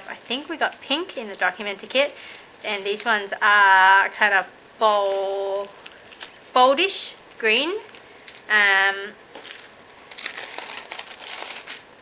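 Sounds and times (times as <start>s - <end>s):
plastic packaging crinkling: 0.0s - 3.6s, 4.8s - 8.5s, 9.3s - 12.0s.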